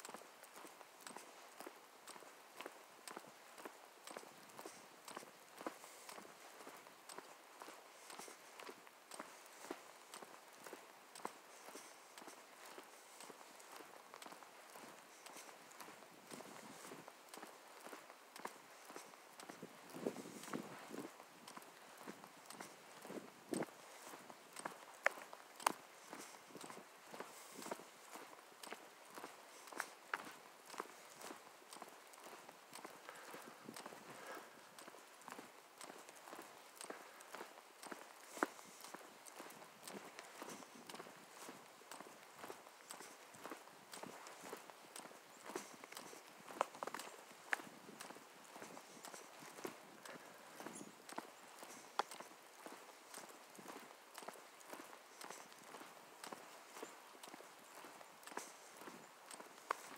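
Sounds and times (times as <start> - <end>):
footsteps on asphalt: 0.0 - 59.9.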